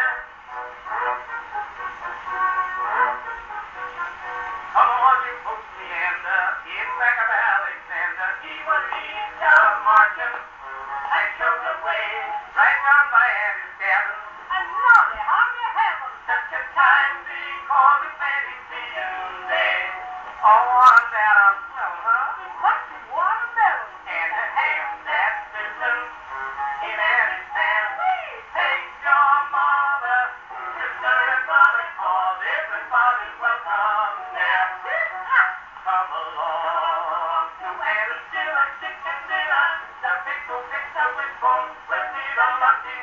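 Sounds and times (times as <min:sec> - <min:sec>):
men singing with band on gramophone: 0:00.0 - 0:43.0.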